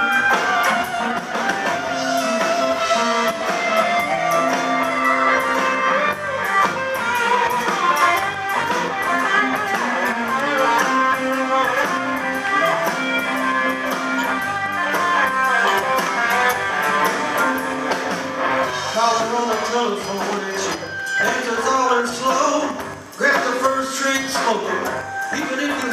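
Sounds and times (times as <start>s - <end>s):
blues band playing: 0.0s - 25.9s.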